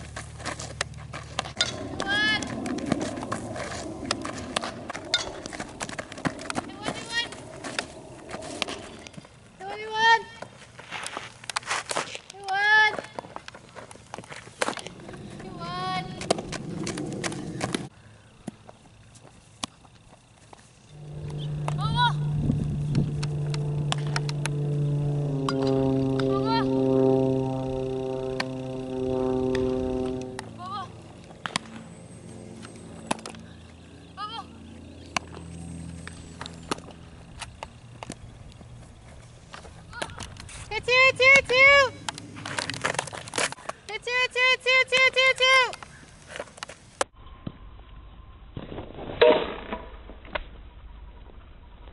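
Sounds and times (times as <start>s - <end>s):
low drone: 0.0s - 9.7s, 14.3s - 19.0s, 20.7s - 43.5s.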